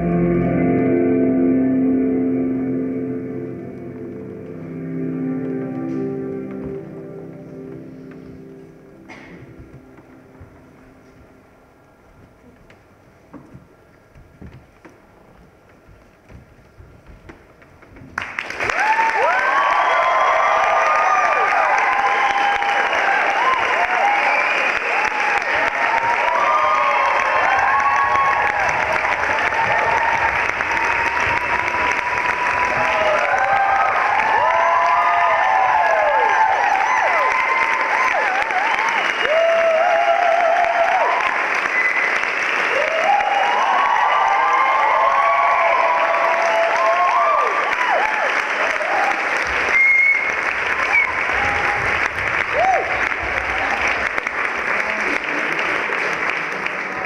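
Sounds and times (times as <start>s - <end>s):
crowd whooping and cheering: 0.0s - 11.4s, 18.2s - 57.0s
audience applauding: 3.0s - 11.3s, 15.7s - 57.0s.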